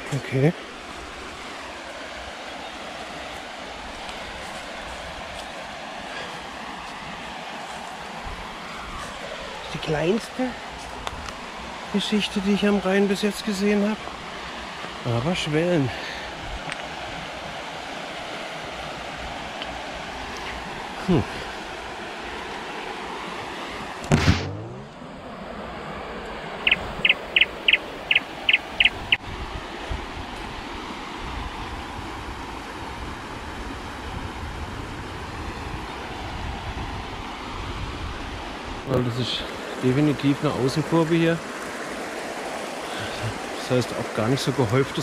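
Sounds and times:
river water rushing over stones: 0.0s - 24.2s, 26.5s - 34.0s, 38.5s - 45.0s
short whoosh: 24.1s - 25.0s.

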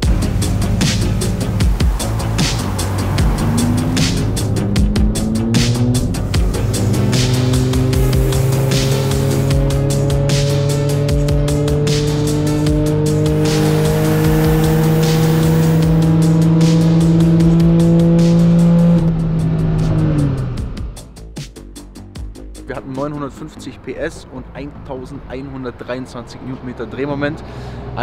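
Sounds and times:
car engine revving on dyno: 0.0s - 20.7s.

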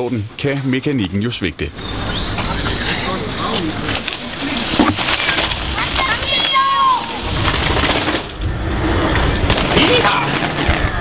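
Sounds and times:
outdoor ambience: 0.0s - 11.0s
indistinct voices: 1.0s - 7.8s.

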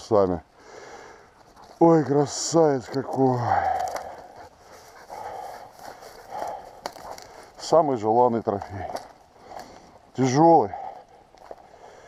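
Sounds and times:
footsteps crunching on frosty stubble: 1.3s - 12.0s.

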